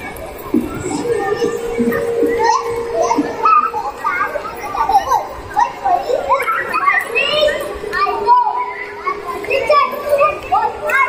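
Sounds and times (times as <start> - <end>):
children's voices chattering: 0.0 - 11.0
steady tone: 0.5 - 6.1.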